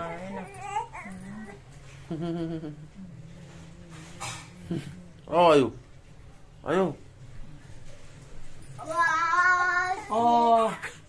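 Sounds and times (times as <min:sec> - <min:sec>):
newborn baby whimpering: 0:00.0 - 0:01.6.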